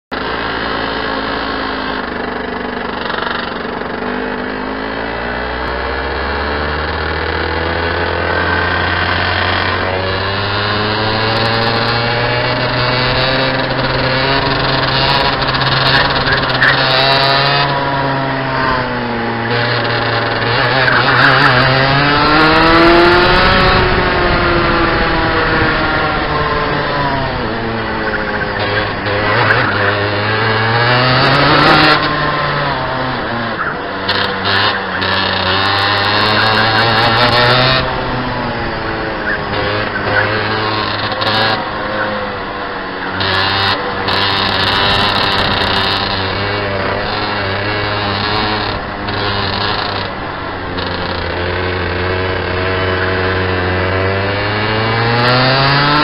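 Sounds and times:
kart engine revving: 0.1 - 56.0.

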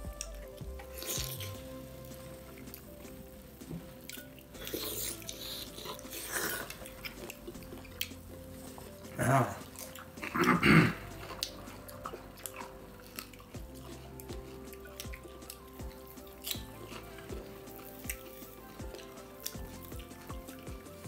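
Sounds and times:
soft background music: 0.0 - 21.0
chewing: 0.1 - 21.0.

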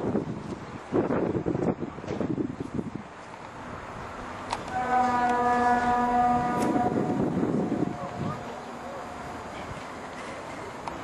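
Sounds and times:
wind noise on microphone: 0.0 - 8.6
ship's horn blast: 4.6 - 9.4.

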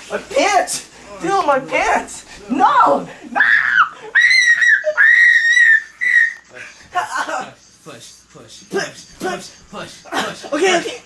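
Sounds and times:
person squealing: 3.2 - 6.5.

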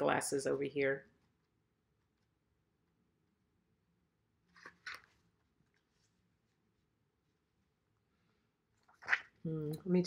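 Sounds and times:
paper rustling: 4.4 - 6.5.

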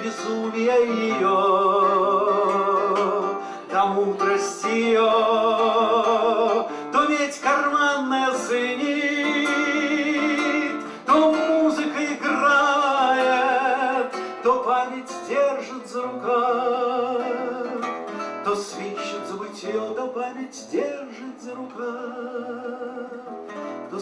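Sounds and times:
acoustic guitar strumming: 0.0 - 24.0
man singing: 0.0 - 24.0.

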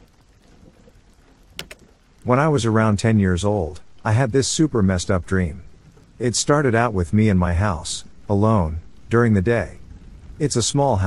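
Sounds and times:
faint steady rain: 0.0 - 11.0
sharp click: 1.6 - 1.8.

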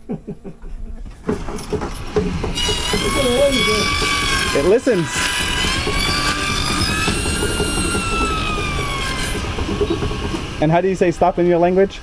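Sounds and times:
geared drive rumbling clatter: 1.2 - 12.0
circular saw whine: 2.6 - 11.7.

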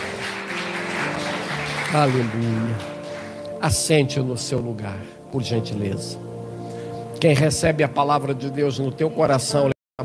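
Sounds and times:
congregation applauding: 0.0 - 4.5
soft music with held notes: 0.0 - 9.7.

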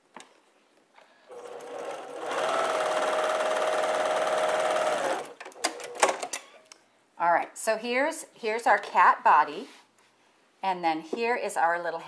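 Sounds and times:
sewing machine whirring: 1.3 - 6.4.

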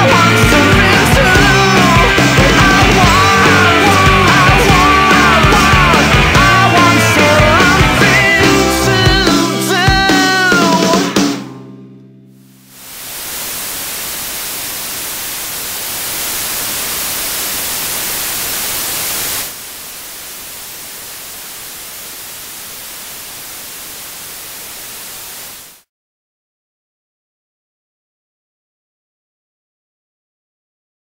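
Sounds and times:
television static hiss: 12.5 - 25.9.

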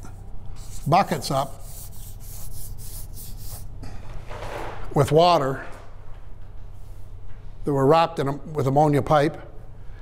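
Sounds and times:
marker scratching on paper: 0.6 - 3.7.

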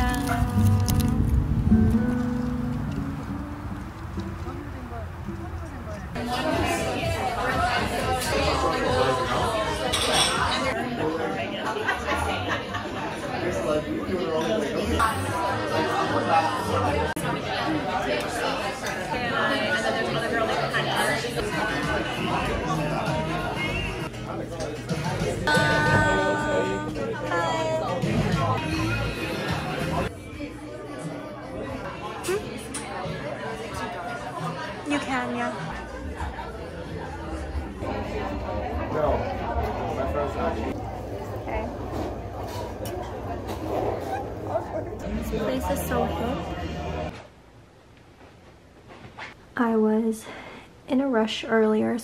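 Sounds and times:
diners chattering: 0.0 - 47.3.

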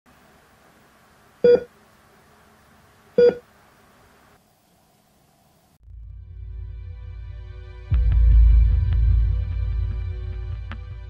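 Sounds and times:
heart monitor beeps: 1.4 - 1.7, 3.2 - 3.4.

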